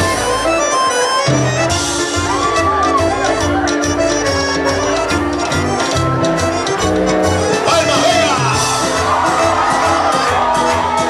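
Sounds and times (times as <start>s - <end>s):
live band music: 0.0s - 11.0s
upright bass: 0.0s - 11.0s.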